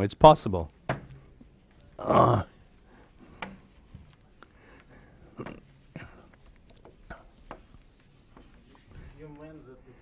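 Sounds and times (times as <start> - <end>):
blackboard being wiped: 2.6 - 4.4, 5.2 - 9.9.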